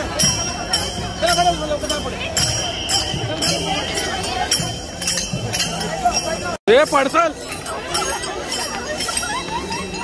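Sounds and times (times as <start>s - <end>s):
crowd chatter: 0.0s - 10.0s
metallic jingling and clinking: 0.0s - 10.0s.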